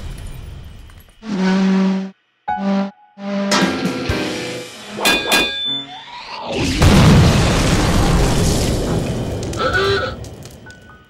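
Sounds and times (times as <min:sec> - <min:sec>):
explosion boom: 0:06.6 - 0:09.6.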